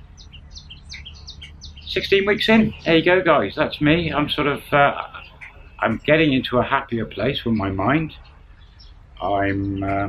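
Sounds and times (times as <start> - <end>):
low steady rumble: 0.0 - 10.0
small birds chirping: 0.0 - 10.0.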